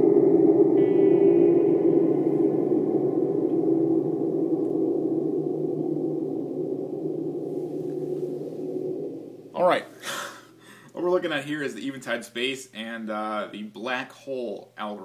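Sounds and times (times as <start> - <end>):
guitar with long reverb wash: 0.0 - 10.8.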